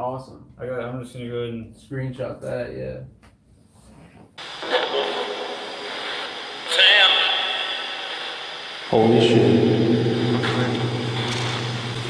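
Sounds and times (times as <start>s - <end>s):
radio broadcast burst: 4.4s - 12.0s
radio static hiss: 4.4s - 12.0s.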